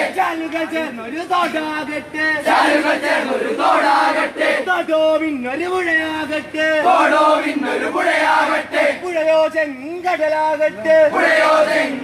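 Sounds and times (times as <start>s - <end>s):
crowd of men chanting: 0.0s - 0.8s, 2.4s - 4.8s, 6.8s - 9.1s, 11.0s - 12.0s.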